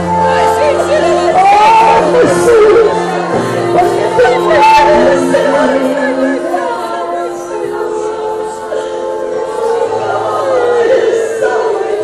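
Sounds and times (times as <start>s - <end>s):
women's voices singing together: 0.0s - 12.0s.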